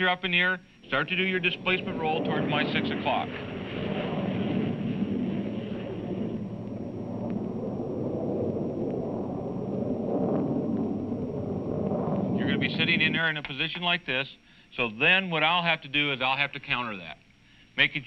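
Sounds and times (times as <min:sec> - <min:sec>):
jet engine rumble: 0:00.0 - 0:18.0.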